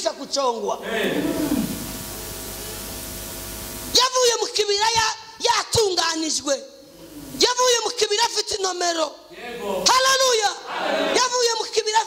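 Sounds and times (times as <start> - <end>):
static hiss: 0.1 - 5.7, 6.7 - 7.8.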